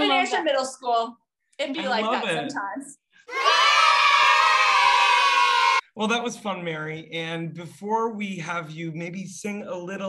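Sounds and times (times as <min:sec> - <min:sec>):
children cheering yay: 0:03.3 - 0:05.8.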